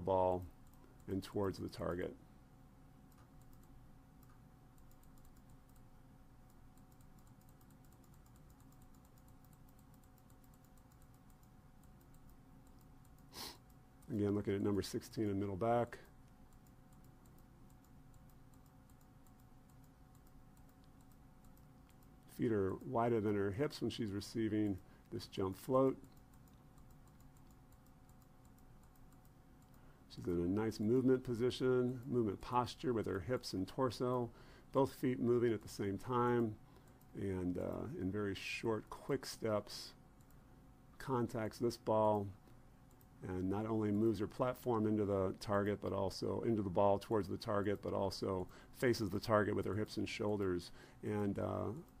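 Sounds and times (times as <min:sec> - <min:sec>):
low steady hum: 0:00.0 - 0:52.0
rapid clicking: 0:03.1 - 0:14.3, 0:16.3 - 0:22.9.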